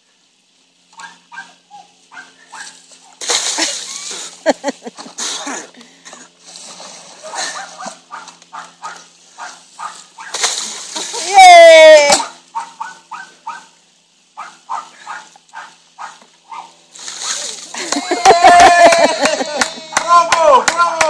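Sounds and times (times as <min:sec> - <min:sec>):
small dog barking and yipping: 0:01.0 - 0:02.8, 0:07.3 - 0:10.4, 0:12.2 - 0:13.8, 0:14.4 - 0:16.8.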